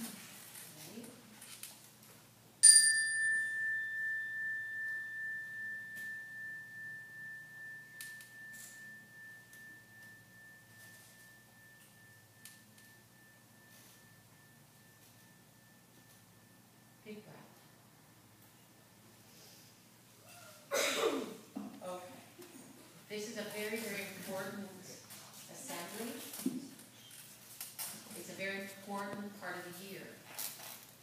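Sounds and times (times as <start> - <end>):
meditation chime ringing: 2.6 - 18.4.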